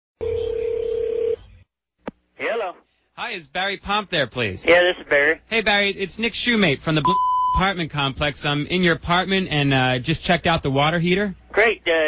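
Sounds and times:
telephone tone: 0.2s - 1.5s.

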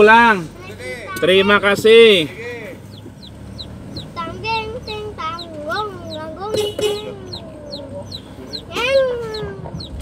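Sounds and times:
chicks chirping: 2.1s - 10.0s
hen clucking: 2.4s - 10.0s.

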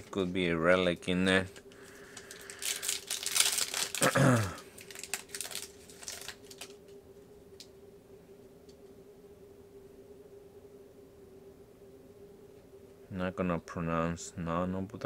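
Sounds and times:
faint steady hum: 0.0s - 15.0s
foil pack tearing and crinkling: 1.3s - 6.8s
throat clearing: 4.0s - 4.6s.

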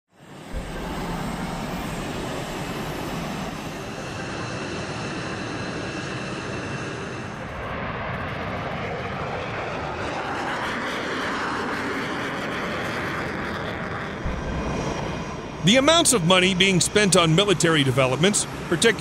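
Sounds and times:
faint high whine: 0.1s - 9.3s, 14.2s - 19.0s
jet engine roar: 0.1s - 19.0s.

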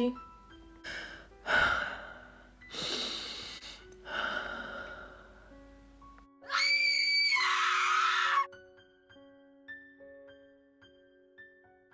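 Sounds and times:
soft piano music: 0.0s - 11.9s
loud high-pitched scream: 6.4s - 8.5s.

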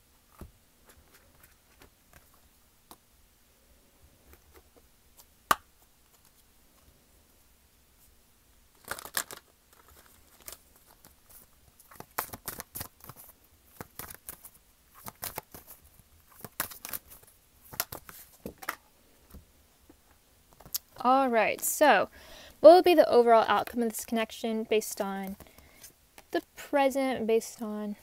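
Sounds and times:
cards being shuffled: 0.3s - 3.0s, 8.8s - 18.8s.

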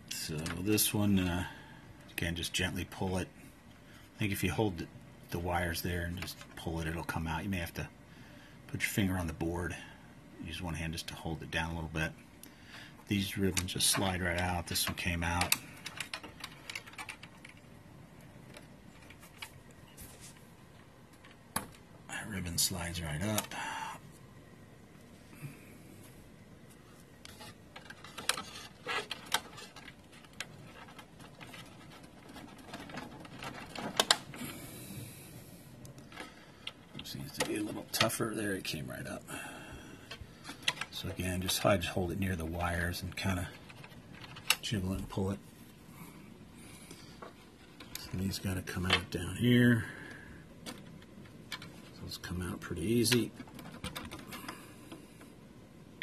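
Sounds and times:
faint handling noise: 0.0s - 7.9s, 11.0s - 56.0s
small clicks and rubbing: 13.4s - 21.9s, 26.0s - 34.6s, 35.8s - 38.8s, 40.0s - 56.0s.

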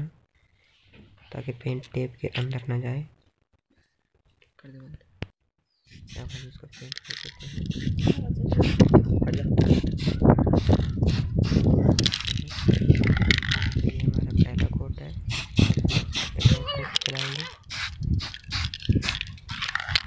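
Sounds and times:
spray can hissing: 5.9s - 8.8s, 9.7s - 12.8s, 15.3s - 16.5s, 17.2s - 19.3s.

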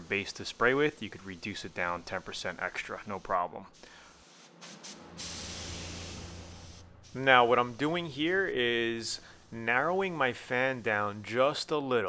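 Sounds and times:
spray gun blasts: 0.0s - 11.6s
spray gun air hissing: 0.0s - 11.8s.

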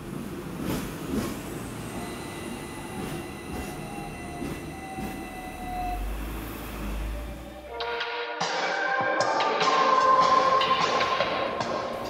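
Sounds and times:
train low rumble: 0.0s - 7.9s
steady high whine: 1.5s - 8.1s.

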